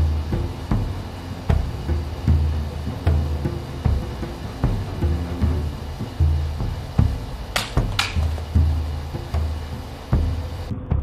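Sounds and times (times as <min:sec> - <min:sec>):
background music with drum beat: 0:00.0 - 0:11.0.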